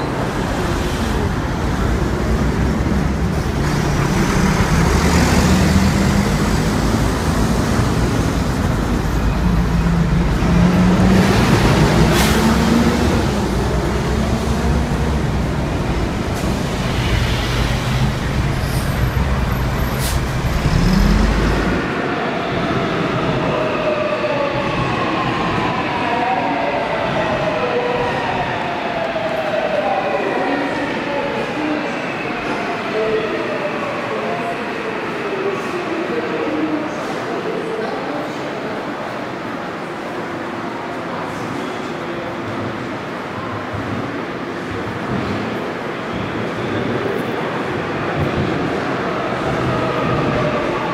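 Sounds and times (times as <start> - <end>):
heavy street traffic: 0.0 - 50.9
subway train whine: 0.0 - 50.9
bus engine revving: 2.2 - 9.1, 10.0 - 21.9.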